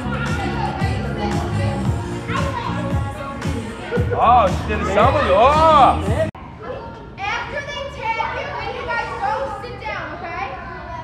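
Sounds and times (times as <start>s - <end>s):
young children talking and calling: 0.0s - 11.0s.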